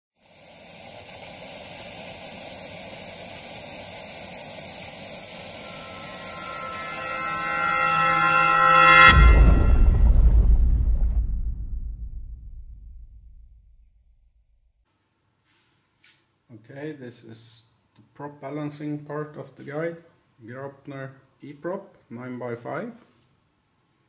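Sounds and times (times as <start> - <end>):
tv static hiss: 0.2 - 6.9
synth tones: 5.1 - 10.4
deep boom: 6.1 - 14.4.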